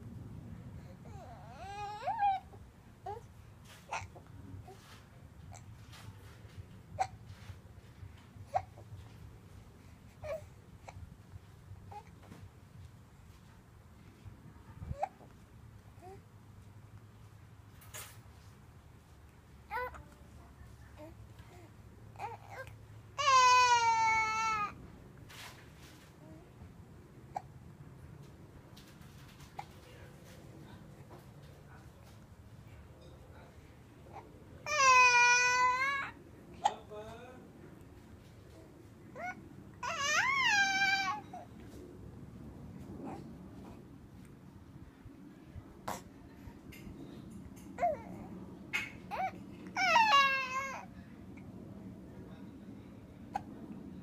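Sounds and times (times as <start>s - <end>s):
faint low background noise: 0.0s - 54.0s.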